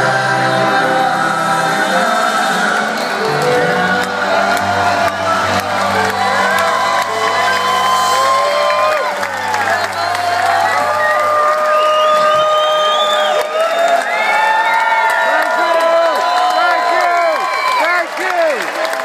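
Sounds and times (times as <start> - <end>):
audience cheering and whooping: 2.6 - 19.0.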